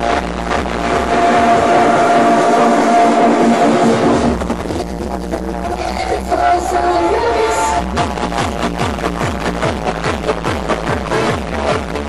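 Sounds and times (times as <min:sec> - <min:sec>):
held synth note: 0:00.0 - 0:04.6, 0:05.7 - 0:08.1
dance music beat: 0:00.0 - 0:12.0.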